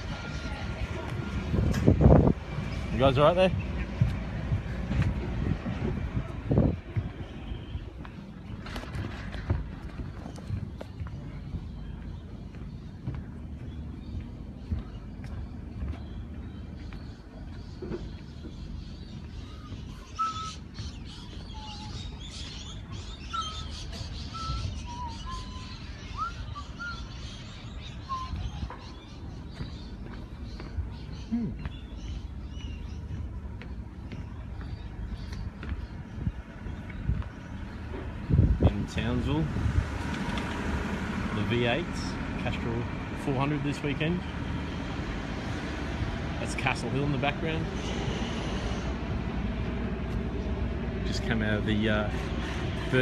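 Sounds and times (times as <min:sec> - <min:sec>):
low rumble: 0:00.0 - 0:23.0
birds chirping: 0:00.0 - 0:53.0.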